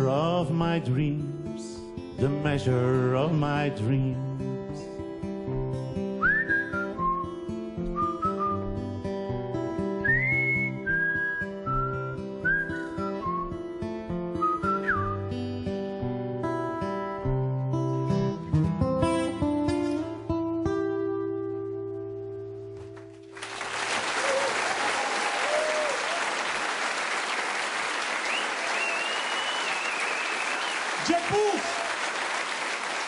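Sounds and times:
acoustic guitar playing: 0.0 - 23.4
person whistling a melody: 6.2 - 8.7, 10.0 - 13.7, 14.3 - 15.3, 28.3 - 30.9.

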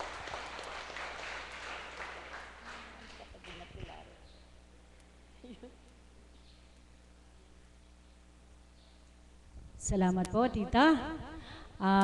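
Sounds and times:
audience applauding: 0.0 - 4.0.

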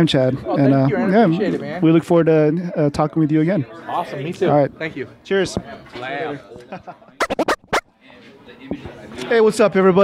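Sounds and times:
sharp scratchy strokes: 7.2 - 7.9.

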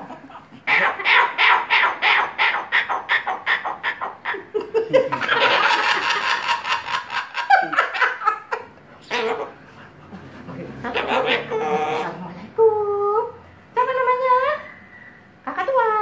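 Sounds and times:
cockatoo screeching: 0.7 - 4.4, 9.1 - 9.6, 10.8 - 12.2
person laughing: 4.4 - 8.6.

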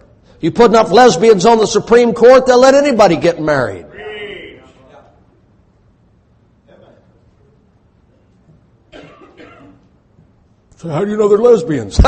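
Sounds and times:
person preaching: 0.4 - 5.1
person coughing: 8.9 - 9.9.

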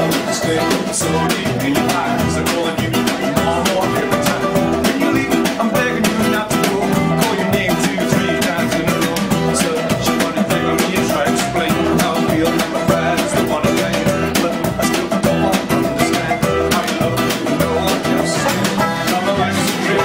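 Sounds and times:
banjos playing bluegrass: 0.0 - 20.0.

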